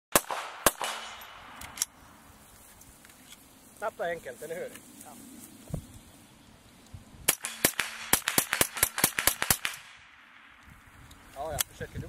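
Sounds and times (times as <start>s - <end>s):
rifle shots fired rapidly: 0.1s - 1.2s, 7.3s - 10.0s.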